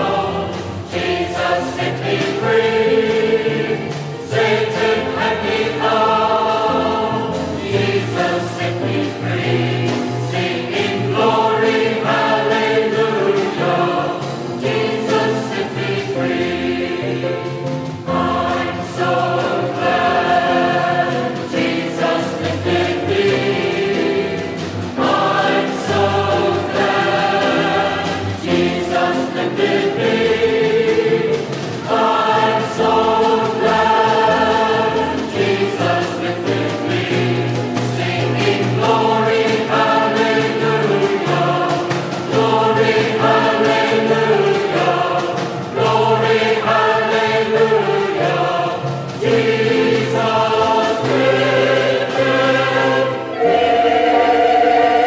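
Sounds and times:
choir singing gospel in harmony: 0:00.0 - 0:55.0.

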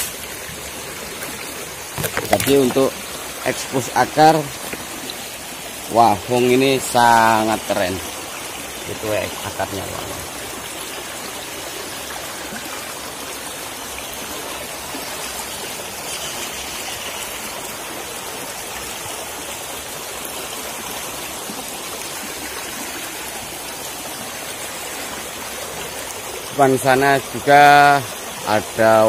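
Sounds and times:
stream rushing over stones: 0:00.0 - 0:29.0.

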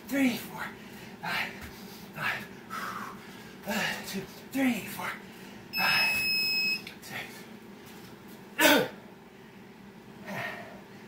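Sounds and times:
electronic timer beep: 0:05.8 - 0:06.8
man breathing hard and groaning: 0:10.2 - 0:10.9.

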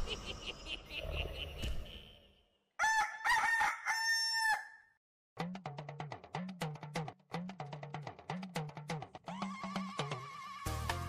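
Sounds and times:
rooster crowing: 0:02.8 - 0:05.0.

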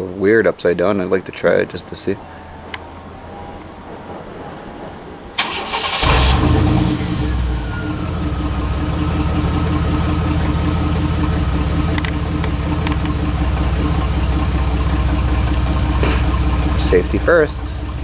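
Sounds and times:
truck engine starting and idling: 0:00.8 - 0:18.0
engine whine: 0:01.6 - 0:18.0.

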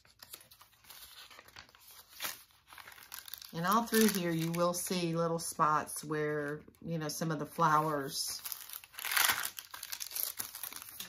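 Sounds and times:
paper pages rustling: 0:00.0 - 0:05.0, 0:07.7 - 0:11.0.

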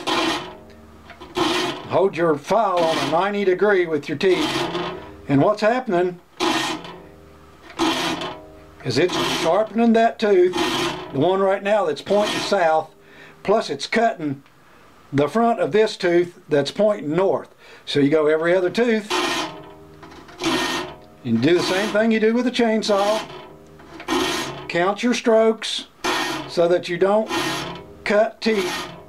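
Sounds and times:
file rasping across saw teeth: 0:00.0 - 0:00.6, 0:01.2 - 0:01.9, 0:02.7 - 0:03.3, 0:04.3 - 0:05.1, 0:06.4 - 0:07.0, 0:07.7 - 0:09.7, 0:10.5 - 0:11.2, 0:12.1 - 0:12.7, 0:19.1 - 0:22.1, 0:22.9 - 0:24.7, 0:26.0 - 0:29.0.

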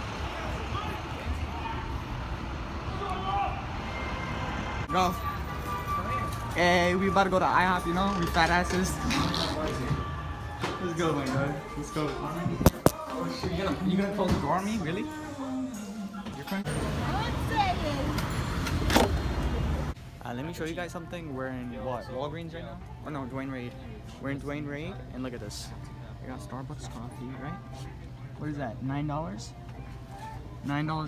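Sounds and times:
low traffic rumble: 0:00.0 - 0:12.7, 0:16.6 - 0:21.8.

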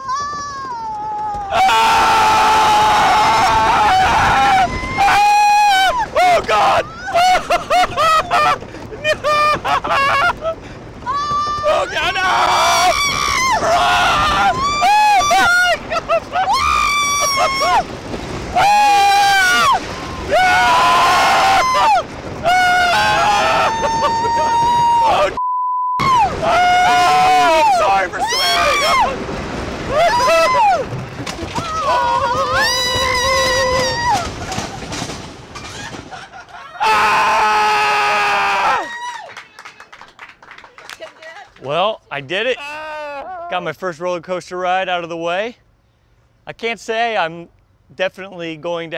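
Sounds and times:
riders screaming and yelling: 0:00.0 - 0:25.4, 0:26.0 - 0:34.8, 0:36.6 - 0:39.2.

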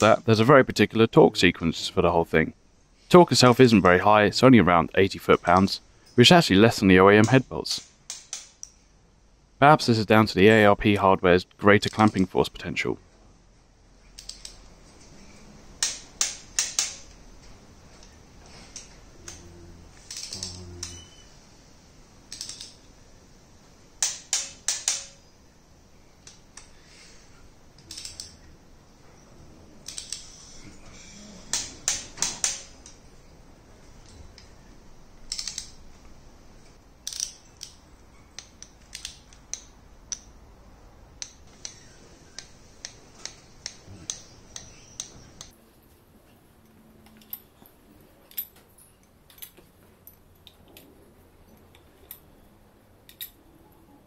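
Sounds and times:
torque wrench clicking: 0:14.2 - 0:14.6, 0:20.1 - 0:21.0, 0:22.3 - 0:22.8, 0:24.0 - 0:25.2, 0:27.8 - 0:28.5, 0:29.8 - 0:30.4, 0:35.3 - 0:35.8, 0:37.0 - 0:37.8, 0:38.4 - 0:40.3.

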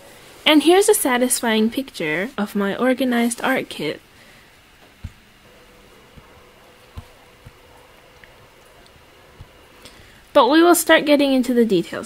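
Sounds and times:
faint hum: 0:00.0 - 0:12.0
steady hiss: 0:00.0 - 0:12.0
soft low thumps: 0:04.8 - 0:10.3.

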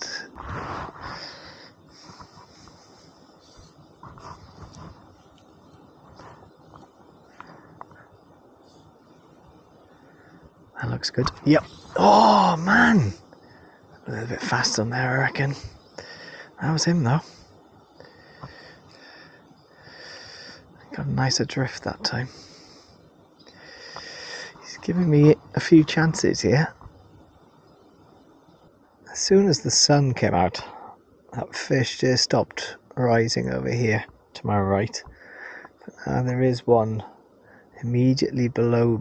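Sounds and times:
soft breathing: 0:00.0 - 0:20.9, 0:22.0 - 0:25.0, 0:35.0 - 0:35.9, 0:37.0 - 0:37.8.

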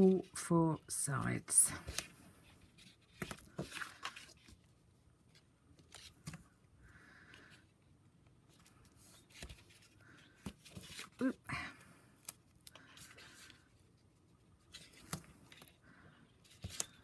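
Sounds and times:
card rustling: 0:01.2 - 0:06.6, 0:08.4 - 0:11.4, 0:16.4 - 0:17.0.

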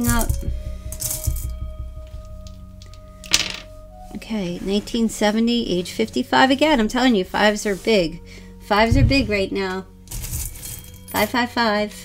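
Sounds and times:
soft music of held tones: 0:00.0 - 0:12.0.

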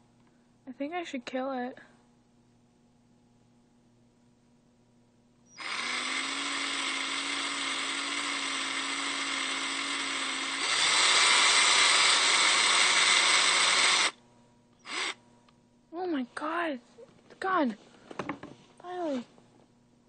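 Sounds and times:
cordless drill motor whine: 0:05.5 - 0:14.2, 0:14.8 - 0:15.2.

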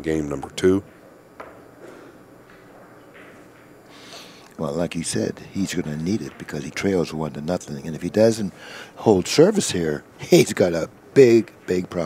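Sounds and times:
billiard balls contact: 0:00.3 - 0:12.0
cue tip striking ball click: 0:00.8 - 0:03.8.

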